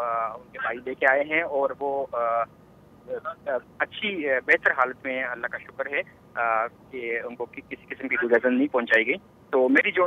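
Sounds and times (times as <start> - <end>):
man talking over telephone: 0.0 - 2.5, 3.1 - 10.0.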